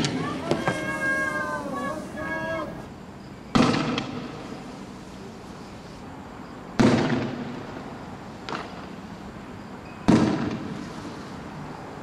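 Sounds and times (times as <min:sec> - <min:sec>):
people shouting in high calls: 0:00.0 - 0:02.9
sharp loud bang: 0:03.5 - 0:04.2.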